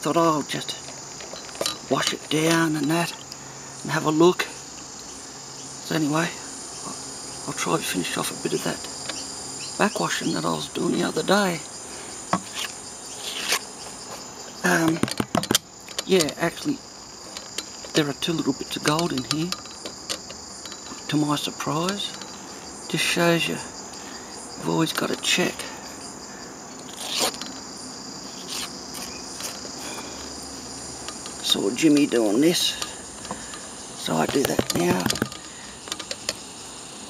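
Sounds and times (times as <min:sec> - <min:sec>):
crickets chirring: 0:00.0 - 0:37.0
high-pitched insect drone: 0:00.0 - 0:37.0
plastic pan clicks: 0:34.3 - 0:36.3.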